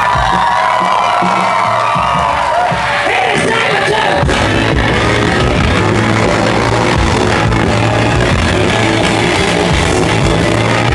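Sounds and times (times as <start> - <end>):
crowd cheering: 0.0 - 10.9
rock band playing live: 0.0 - 10.9.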